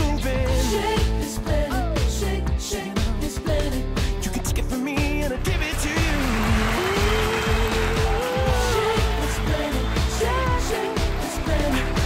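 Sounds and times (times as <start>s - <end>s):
instrumental dance-pop music: 0.0s - 12.0s.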